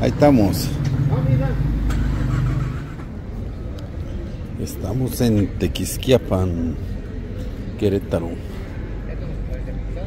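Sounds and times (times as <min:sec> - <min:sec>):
street background: 0:00.0 - 0:10.0.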